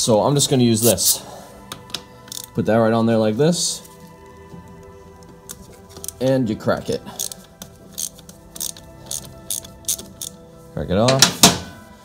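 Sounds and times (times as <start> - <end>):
socket wrench clicking: 1.7 - 2.6, 5.4 - 6.2, 7.2 - 10.4.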